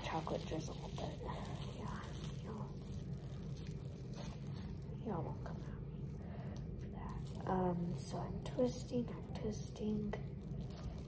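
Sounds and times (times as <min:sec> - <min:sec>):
plastic wrap crinkling: 0:00.0 - 0:11.0
steady low hum: 0:00.0 - 0:11.0.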